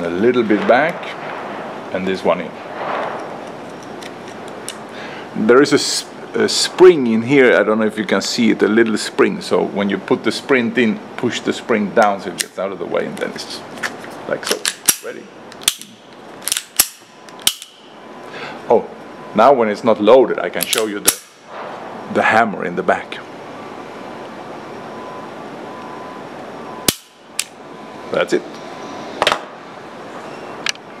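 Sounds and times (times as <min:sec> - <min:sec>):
pistol action metallic clicks: 0:13.8 - 0:17.9, 0:20.6 - 0:21.4, 0:26.8 - 0:27.6.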